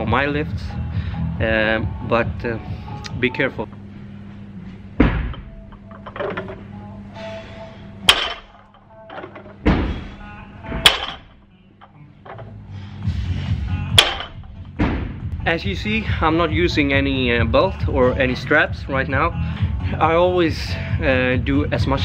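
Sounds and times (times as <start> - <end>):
background music: 0.0 - 22.0
dull thuds: 5.0 - 5.7, 9.6 - 11.3, 13.9 - 15.4.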